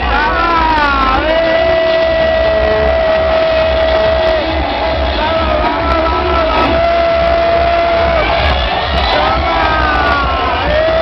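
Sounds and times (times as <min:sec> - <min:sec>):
loud music with bass beat: 0:00.0 - 0:11.0.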